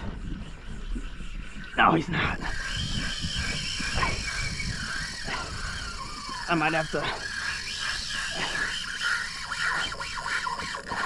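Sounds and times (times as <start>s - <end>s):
fishing reel drag whining: 0.0s - 11.0s
wind rumble on microphone: 0.0s - 11.0s.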